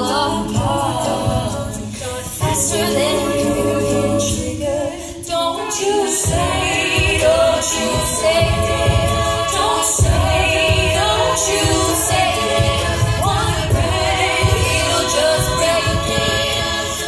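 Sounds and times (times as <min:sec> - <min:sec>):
women singing in harmony: 0:00.0 - 0:17.0
steady low beat: 0:06.2 - 0:17.0.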